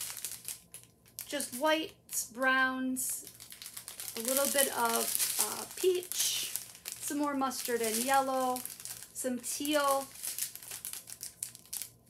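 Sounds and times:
plastic bags crinkling: 0:00.0 - 0:02.3, 0:03.0 - 0:12.0.

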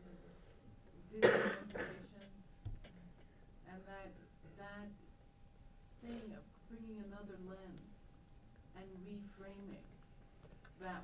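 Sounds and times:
person coughing: 0:01.2 - 0:02.2.

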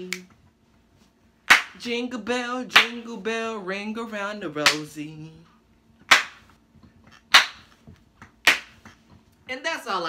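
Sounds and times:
sharp hand claps: 0:01.5 - 0:01.8, 0:02.8 - 0:03.0, 0:04.6 - 0:04.9, 0:06.1 - 0:06.6, 0:07.3 - 0:09.0.

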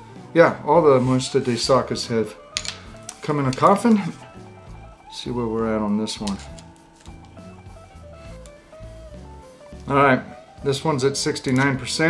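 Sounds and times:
steady low bass line: 0:00.8 - 0:10.7
simple melody of single notes: 0:00.9 - 0:12.0.

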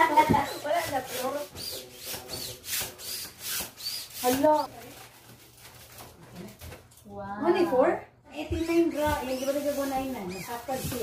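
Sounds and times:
foil balloons crinkling: 0:00.0 - 0:06.9, 0:08.6 - 0:11.0.

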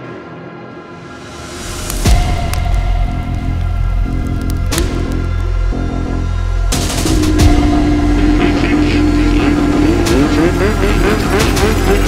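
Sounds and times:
music with deep bass: 0:01.2 - 0:12.0
engine running: 0:01.3 - 0:12.0.

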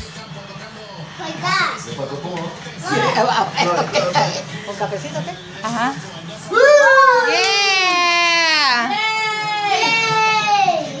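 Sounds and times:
young child crying: 0:08.9 - 0:11.0.

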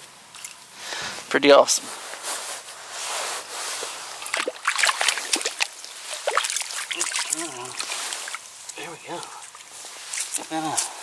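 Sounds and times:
water sloshing and splashing: 0:04.2 - 0:08.8.

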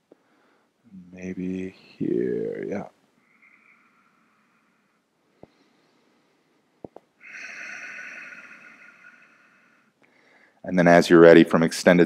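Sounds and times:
faint soft hiss: 0:00.0 - 0:11.0.

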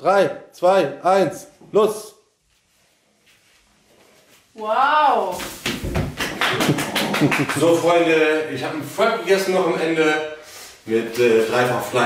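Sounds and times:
hula hoop swishing: 0:02.4 - 0:07.0.

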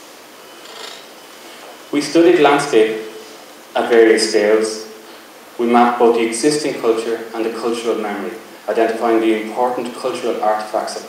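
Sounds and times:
man speaking: 0:01.9 - 0:03.2, 0:03.8 - 0:05.0, 0:05.6 - 0:11.0.

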